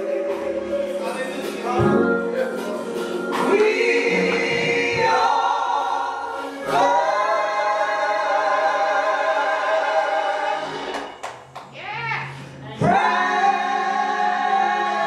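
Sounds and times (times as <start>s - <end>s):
vocal trio singing gospel harmony: 0.0s - 11.2s, 12.7s - 15.0s.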